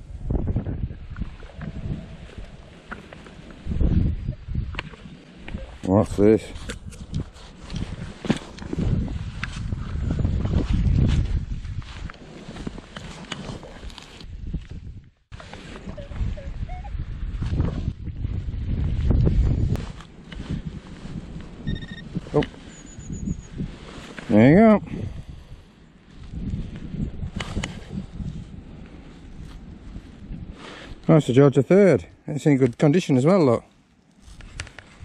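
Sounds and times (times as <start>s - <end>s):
wind on microphone: 0.0s - 31.1s, 34.2s - 35.0s
hand tool digging in soil: 11.0s - 14.3s
short electronic beep: 21.7s - 23.5s.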